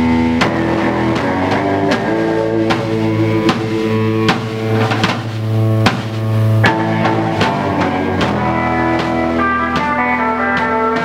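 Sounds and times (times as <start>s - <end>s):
bass guitar: 0.0s - 11.0s
distorted electric guitar chord: 0.0s - 11.0s
sharp drum hits: 0.0s - 11.0s.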